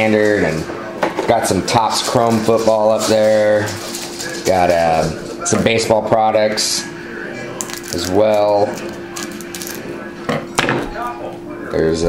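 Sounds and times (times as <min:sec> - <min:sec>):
trading cards rustling and clicking: 0:01.7 - 0:05.1, 0:07.6 - 0:09.8.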